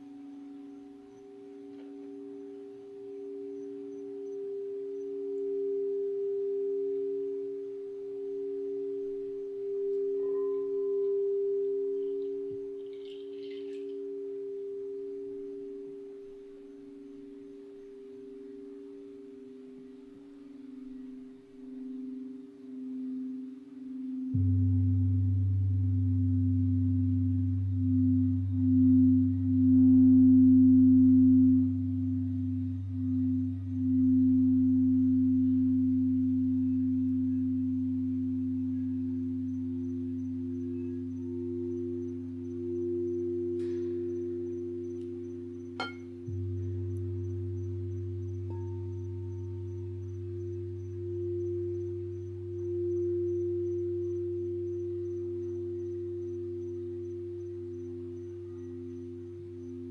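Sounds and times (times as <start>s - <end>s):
crystal singing bowls ringing: 0.0s - 59.9s
deep low hum: 21.7s - 59.9s.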